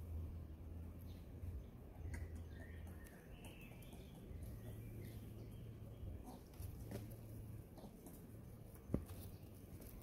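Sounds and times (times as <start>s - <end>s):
faint low background noise: 0.0s - 10.0s
tap on loose gravel: 8.8s - 10.0s.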